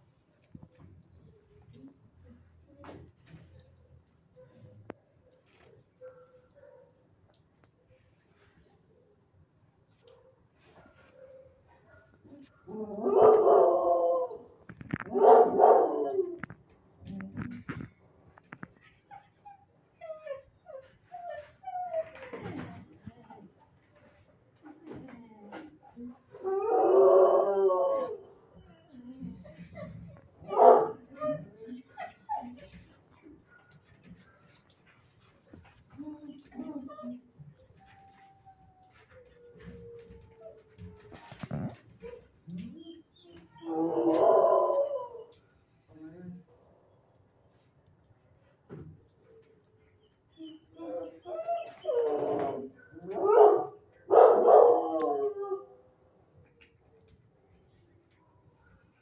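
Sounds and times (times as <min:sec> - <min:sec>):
dogs howling and whining: 0:12.3 - 0:16.6, 0:26.3 - 0:33.4, 0:36.0 - 0:45.4, 0:49.3 - 0:56.2.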